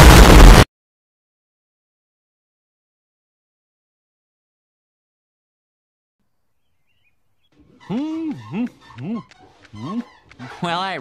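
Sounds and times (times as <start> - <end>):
voice rising in pitch: 7.8 - 10.1.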